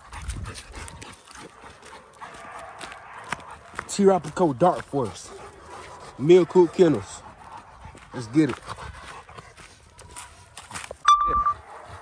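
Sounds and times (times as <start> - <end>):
footsteps on gravel: 0.0 - 6.0, 6.7 - 12.0
dog panting: 0.0 - 12.0.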